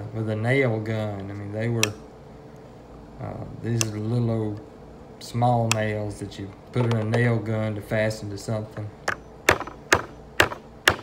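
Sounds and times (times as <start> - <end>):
hammer striking nails in wood: 9.1 - 11.0.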